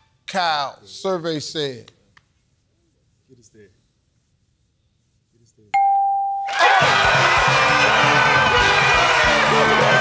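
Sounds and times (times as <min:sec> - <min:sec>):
game show ding: 0:05.8 - 0:06.6
studio audience cheering: 0:06.5 - 0:10.0
celebratory music with steady beat: 0:06.7 - 0:10.0.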